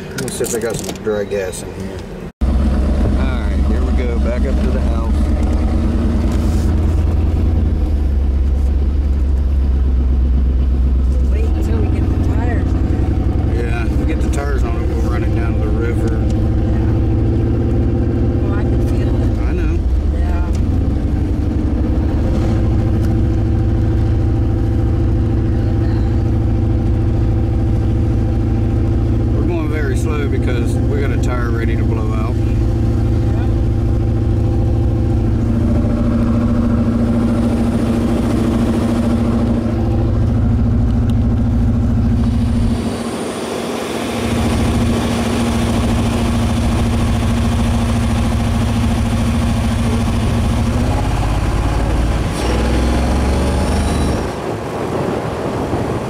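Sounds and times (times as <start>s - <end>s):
car engine rumbling in cabin: 0.0s - 56.0s.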